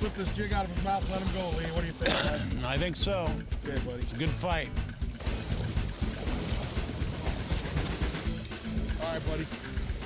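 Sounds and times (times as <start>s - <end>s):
water noise: 0.0s - 10.0s.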